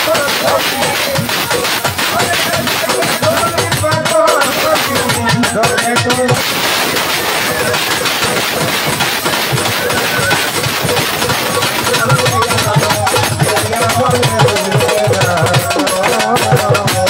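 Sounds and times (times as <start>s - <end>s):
drums and percussion: 0.0s - 17.0s
loud dense noise: 0.0s - 17.0s
man singing: 0.0s - 17.0s.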